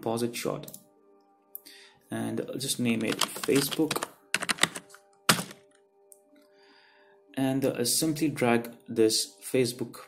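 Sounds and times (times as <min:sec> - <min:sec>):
computer keyboard typing: 0:03.0 - 0:05.6
hard keystroke: 0:03.0 - 0:05.6.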